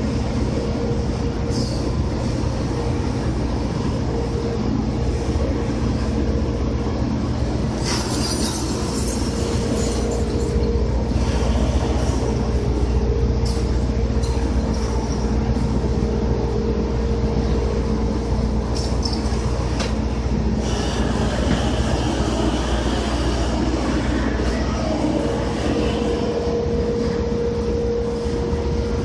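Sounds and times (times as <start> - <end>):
heavy machinery rumbling: 0.0 - 29.0
steady hum: 0.0 - 29.0.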